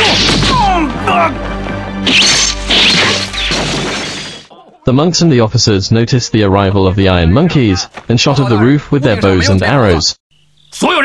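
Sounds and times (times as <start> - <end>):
synthesized narrator voice: 4.6 - 11.0.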